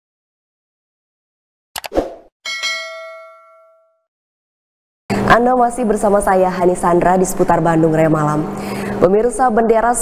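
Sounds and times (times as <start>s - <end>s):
notification bell ding: 2.5s - 4.0s.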